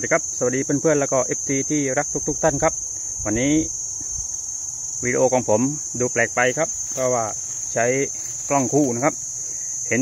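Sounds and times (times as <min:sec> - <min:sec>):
insects buzzing: 0:00.0 - 0:10.0.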